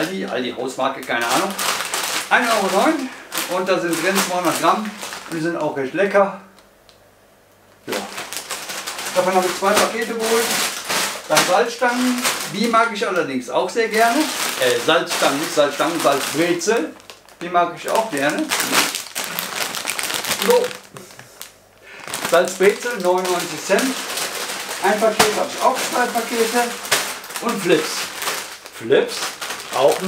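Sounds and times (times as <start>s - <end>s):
plastic chip bag crinkling: 0.0s - 7.0s, 7.8s - 30.0s.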